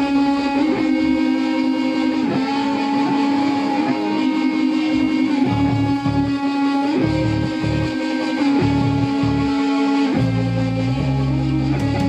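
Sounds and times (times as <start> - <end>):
electric guitar holding a note: 0.0 - 12.0
low repeated bass notes: 0.0 - 12.0.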